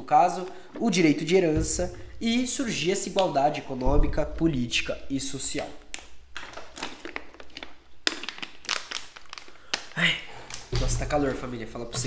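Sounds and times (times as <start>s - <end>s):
plastic bottle crinkling: 0.2s - 4.2s, 5.5s - 12.0s.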